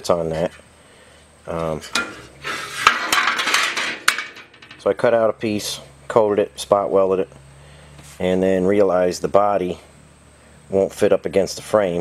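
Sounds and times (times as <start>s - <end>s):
sheet metal rattling scrape: 1.8s - 4.9s.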